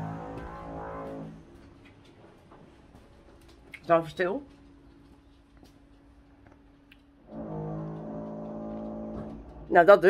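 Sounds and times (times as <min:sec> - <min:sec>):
pitched machine drone: 0:00.0 - 0:01.5, 0:07.2 - 0:09.7.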